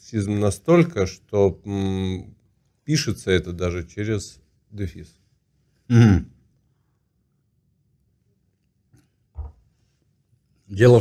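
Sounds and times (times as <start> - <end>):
man's short throat grunt: 5.9 - 6.3.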